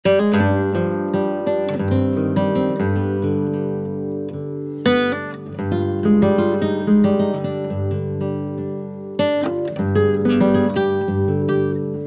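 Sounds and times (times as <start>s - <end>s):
acoustic guitar playing: 0.0s - 12.0s.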